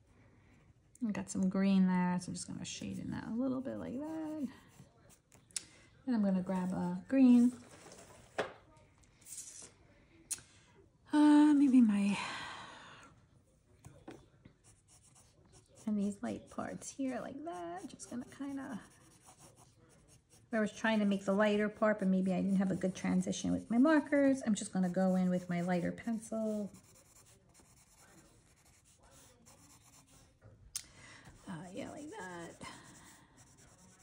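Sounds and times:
pencil scratching on paper: 2.6s - 5.3s, 14.6s - 30.4s, 31.3s - 34.0s.

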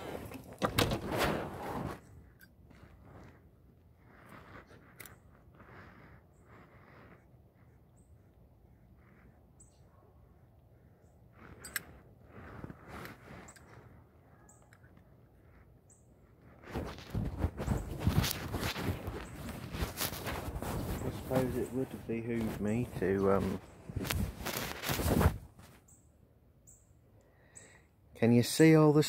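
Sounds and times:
clothing rustling on microphone: 0.0s - 7.1s, 11.3s - 14.0s, 16.3s - 25.9s
crackling rubbing: 0.0s - 9.4s, 10.8s - 25.9s.

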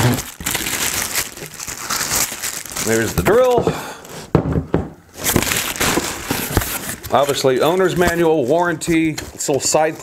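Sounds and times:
plastic bag crinkling: 0.0s - 3.6s, 5.2s - 10.0s.

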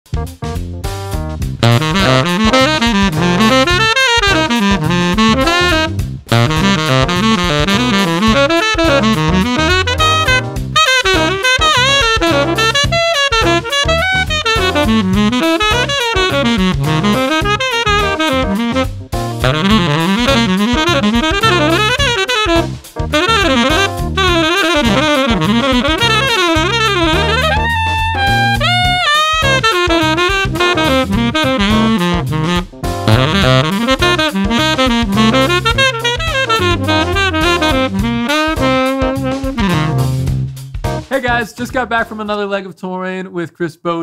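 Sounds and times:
tenor saxophone playing jazz: 0.9s - 41.0s.

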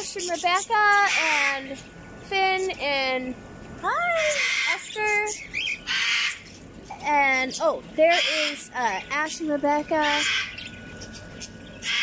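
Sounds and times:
bird squawking harshly: 0.2s - 1.8s, 4.1s - 6.6s, 8.0s - 9.0s, 10.0s - 12.0s.

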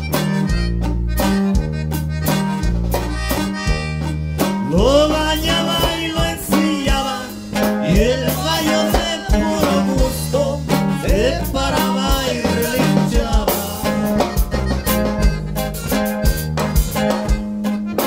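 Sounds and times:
accordion melody: 0.0s - 18.0s
bass line: 0.0s - 18.0s
guitar chords: 0.0s - 18.0s.

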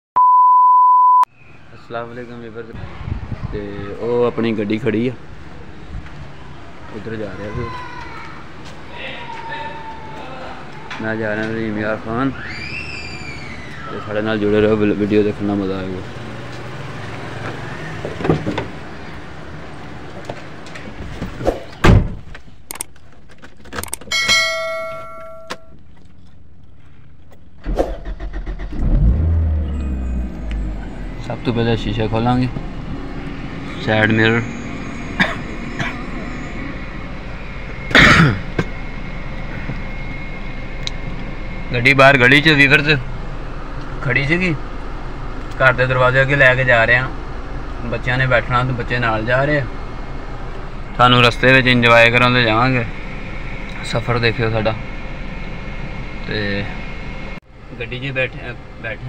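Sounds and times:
electronic beep: 0.2s - 1.3s
ringing ding: 24.1s - 25.8s
car engine cranking and starting: 27.4s - 57.4s.

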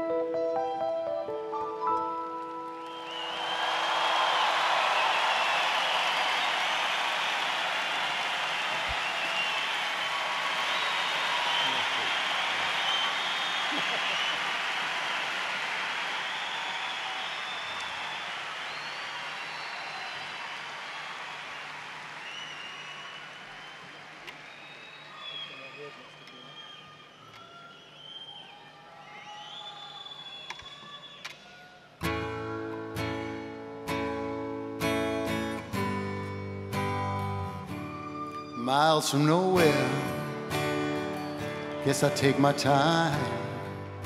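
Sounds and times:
piano chord ringing: 0.0s - 3.1s
audience applause and cheering: 2.4s - 32.6s, 36.6s - 44.0s
whistles: 2.8s - 15.3s, 16.0s - 31.7s.

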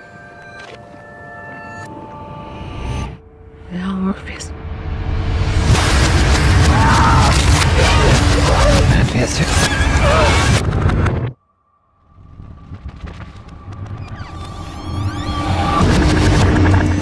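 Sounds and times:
garbled reversed dialogue: 6.7s - 10.6s.

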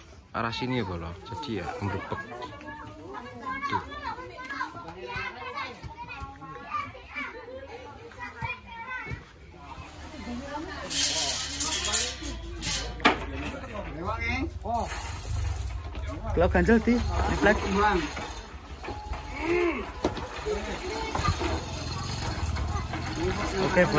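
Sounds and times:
children and people chattering: 0.0s - 23.9s.

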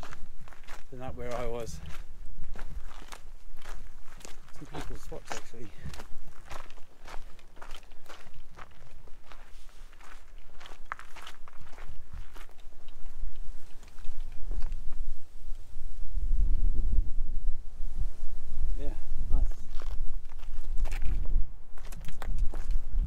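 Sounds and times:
footsteps on rocky trail: 0.0s - 15.3s, 19.4s - 23.0s.

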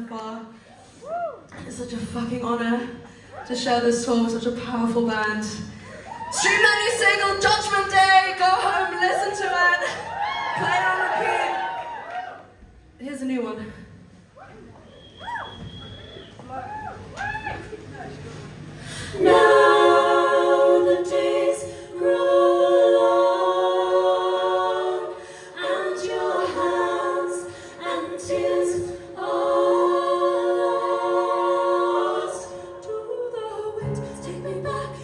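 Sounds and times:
women singing a cappella: 18.9s - 35.0s.

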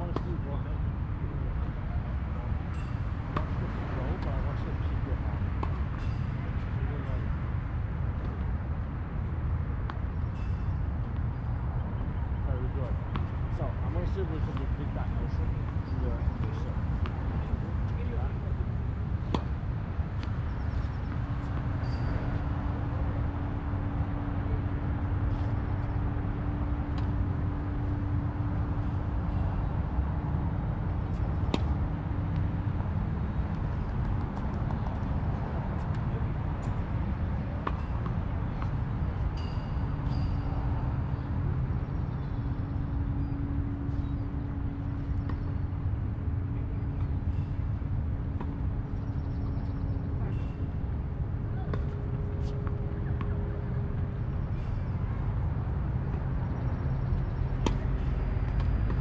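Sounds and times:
continuous low rumble: 0.0s - 59.0s
steady low hum: 0.0s - 59.0s
tennis balls struck by racquets: 2.8s - 6.7s, 13.1s - 18.4s, 19.0s - 29.8s, 30.4s - 40.3s, 55.9s - 59.0s.

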